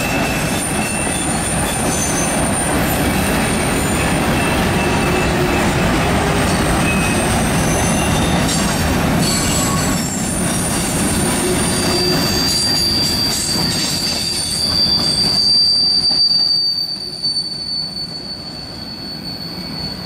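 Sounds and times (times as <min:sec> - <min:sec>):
high-pitched wheel squeal: 0:00.0 - 0:08.6, 0:09.2 - 0:20.0
freight train cars rumbling: 0:00.0 - 0:20.0.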